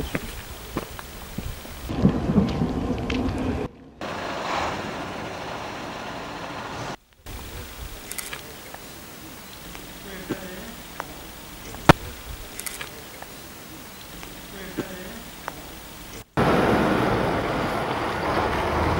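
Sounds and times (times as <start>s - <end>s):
outdoor rumbling hiss: 0.0s - 18.9s.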